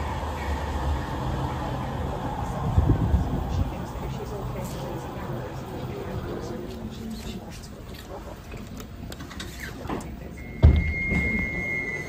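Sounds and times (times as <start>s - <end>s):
tram running rumble: 0.0s - 12.0s
high electronic warning tone: 10.4s - 12.0s.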